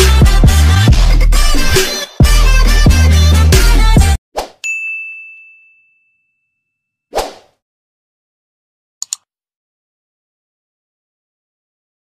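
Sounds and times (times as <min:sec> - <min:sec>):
music with heavy bass beat: 0:00.0 - 0:04.2
bell-like ding: 0:04.6 - 0:07.0.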